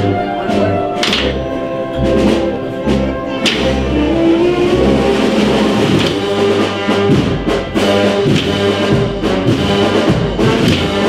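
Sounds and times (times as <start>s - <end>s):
wind band playing a march: 0.0s - 11.0s
bass drum beats: 4.8s - 11.0s.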